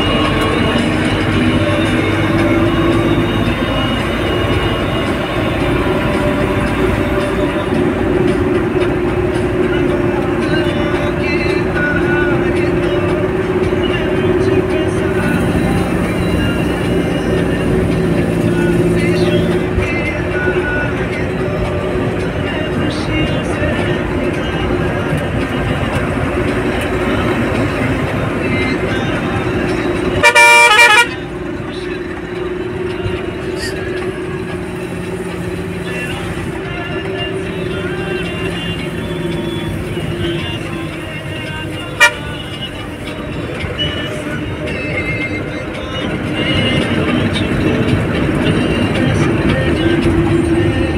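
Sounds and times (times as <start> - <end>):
vehicle engine and road noise: 0.0 - 50.9
horn blast: 30.2 - 31.2, 42.0 - 42.6.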